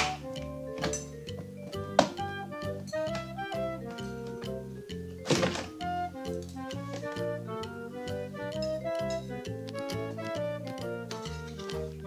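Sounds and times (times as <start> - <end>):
background music: 0.0 - 12.0
dull plastic thunk: 5.2 - 5.8.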